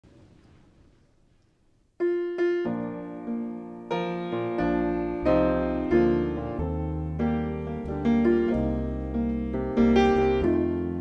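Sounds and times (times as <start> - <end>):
piano chords: 2.0 - 11.0
deep piano bass notes: 2.1 - 11.0.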